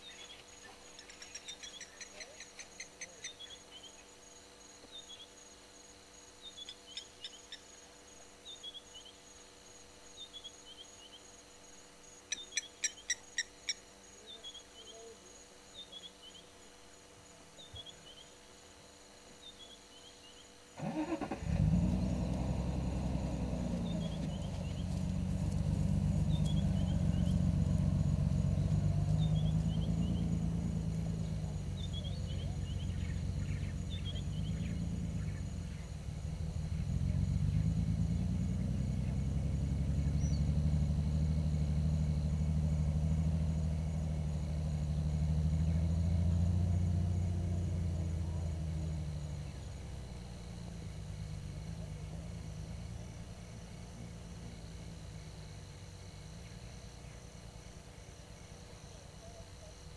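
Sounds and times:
vehicle engine starting and running: 20.8s - 57.6s.

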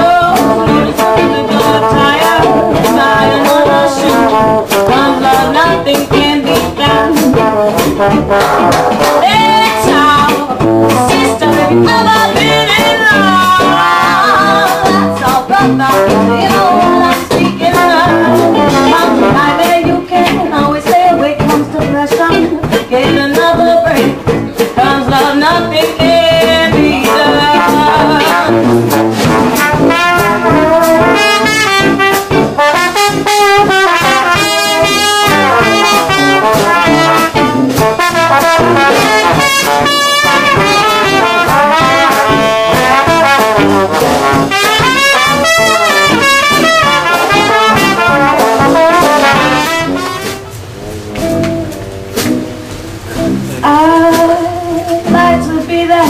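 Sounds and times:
jazz band playing: 0.0s - 56.0s
trumpet and trombone lead: 0.0s - 56.0s.

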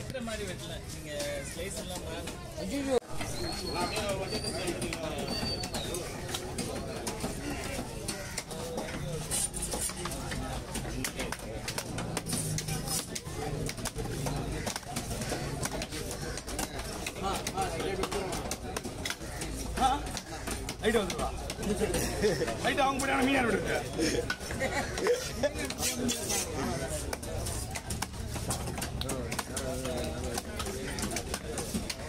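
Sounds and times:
murmur of voices: 0.0s - 32.0s.

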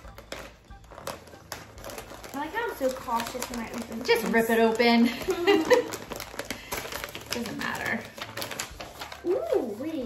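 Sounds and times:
packaging crinkles and clicks: 0.0s - 9.8s
paper rustling: 0.0s - 10.0s.

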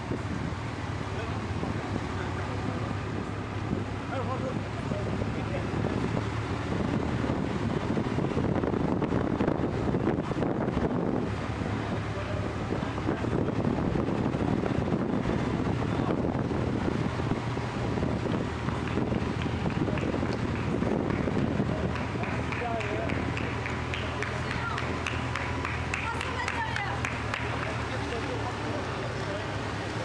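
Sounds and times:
wind buffeting microphone: 0.0s - 28.0s
low engine hum: 0.0s - 30.0s.

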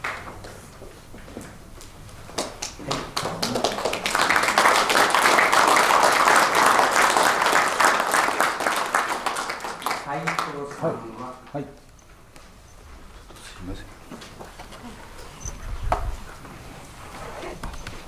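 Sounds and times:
audience applauding: 2.4s - 11.3s.

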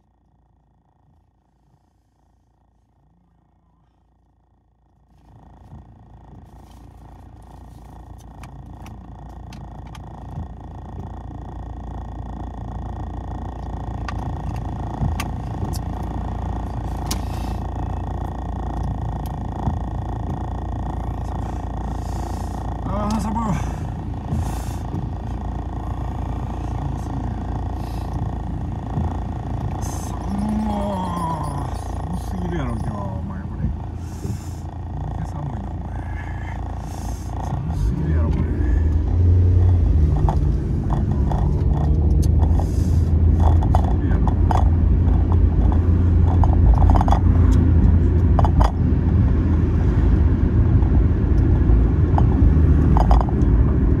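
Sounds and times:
car engine and road rumble: 0.0s - 54.0s.

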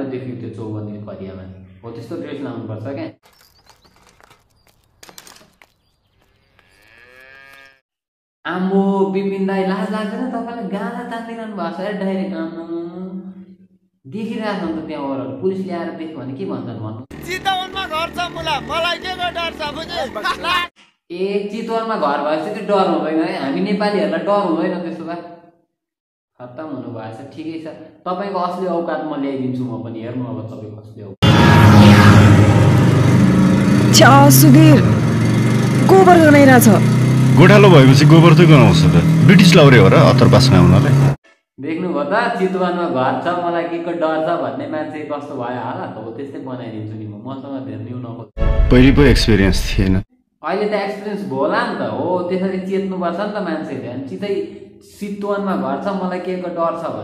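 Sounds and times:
cow mooing: 6.4s - 7.8s
motorcycle engine running: 31.5s - 41.2s.

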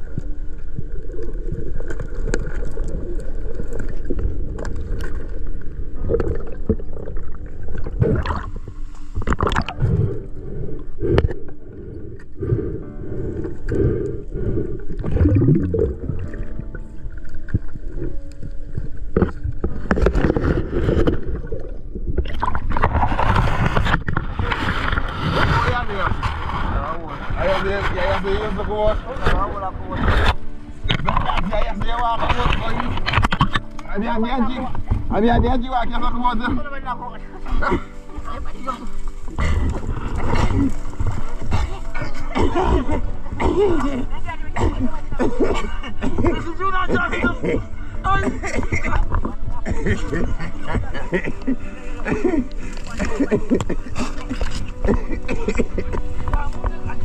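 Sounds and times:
underwater bubbling: 0.0s - 27.4s, 37.5s - 46.5s
knocks and scrapes through reeds: 22.7s - 33.7s.

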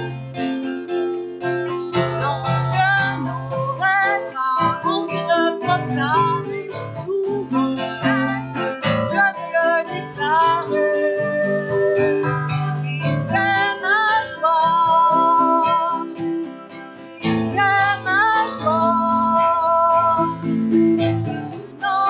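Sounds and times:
acoustic guitar strumming: 0.0s - 22.0s
woman singing worship song: 2.1s - 12.6s, 13.3s - 16.1s, 17.5s - 20.5s, 21.7s - 22.0s.

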